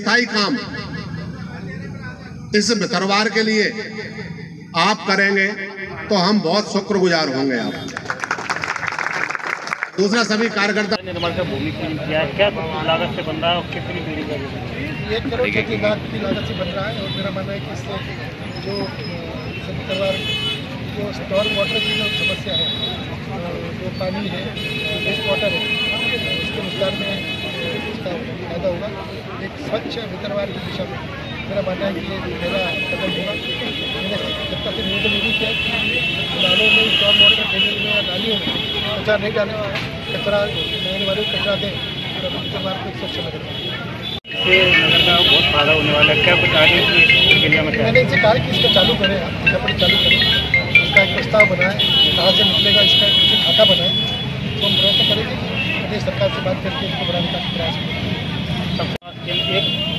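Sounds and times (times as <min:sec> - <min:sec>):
man talking: 0:00.0 - 0:07.9, 0:44.3 - 0:57.9
people talking: 0:10.0 - 0:20.2, 0:44.3 - 0:57.9
vehicle horn toot: 0:40.0 - 0:55.8, 0:58.7 - 0:59.9
high-pitched tones: 0:44.3 - 0:52.6.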